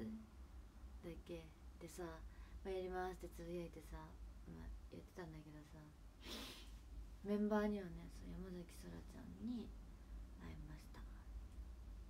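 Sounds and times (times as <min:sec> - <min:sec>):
steady low hum: 0:00.0 - 0:12.0
woman half-whispering: 0:10.4 - 0:11.4.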